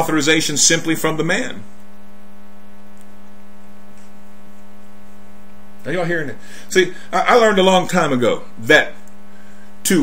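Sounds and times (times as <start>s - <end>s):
person speaking: 0.0s - 1.9s, 5.7s - 9.1s
steady low hum: 0.0s - 10.0s.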